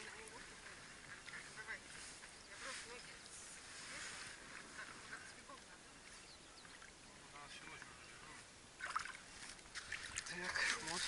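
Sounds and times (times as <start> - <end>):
water sloshing around boat: 0.0 - 11.0.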